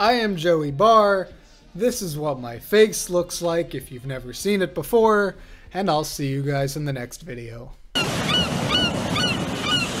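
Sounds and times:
ocean surf rushing: 0:08.0 - 0:10.0.

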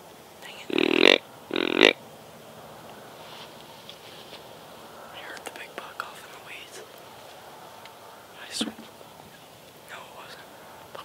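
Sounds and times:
hushed whispering: 0:00.4 - 0:01.0, 0:05.0 - 0:07.0, 0:08.3 - 0:11.0.

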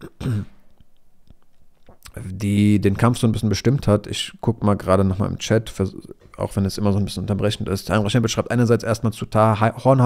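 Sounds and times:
man clearing throat: 0:00.0 - 0:00.6.

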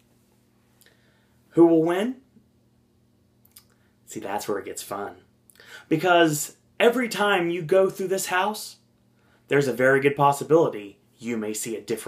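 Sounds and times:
man speaking: 0:01.5 - 0:02.3, 0:04.1 - 0:05.3, 0:05.9 - 0:08.8, 0:09.5 - 0:12.0.

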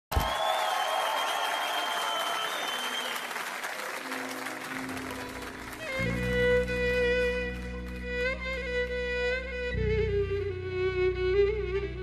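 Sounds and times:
audience applauding and cheering: 0:00.1 - 0:09.0
band playing sustained low notes: 0:04.7 - 0:12.0.

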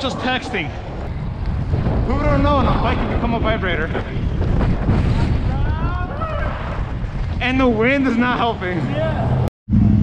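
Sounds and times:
wind buffeting microphone: 0:00.0 - 0:09.5
bike tyres rumbling on asphalt: 0:00.0 - 0:10.0.

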